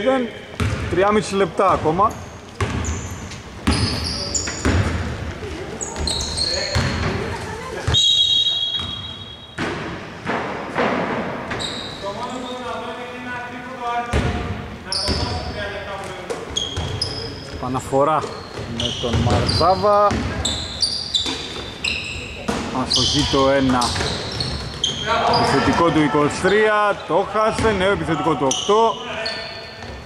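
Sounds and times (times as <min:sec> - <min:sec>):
sneakers squeaking: 0:00.0 - 0:10.3, 0:11.3 - 0:13.0, 0:14.1 - 0:30.0
basketball bouncing on hardwood: 0:00.6 - 0:00.9, 0:02.6 - 0:03.0, 0:03.6 - 0:05.3, 0:06.7 - 0:08.0, 0:18.5 - 0:19.5
players calling out: 0:16.6 - 0:29.9.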